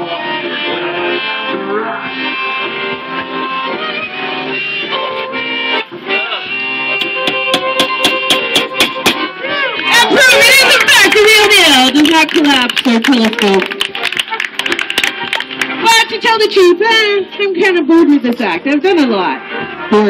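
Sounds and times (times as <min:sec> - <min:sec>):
flute playing: 0:00.0 - 0:11.8
sustained reedy chords: 0:02.3 - 0:11.4.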